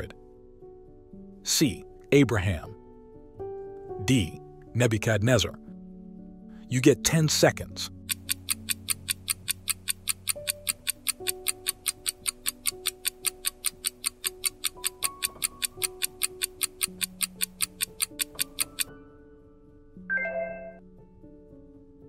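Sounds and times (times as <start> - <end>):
soft background music: 0.0 - 22.0
clock-like ticking: 8.0 - 18.9.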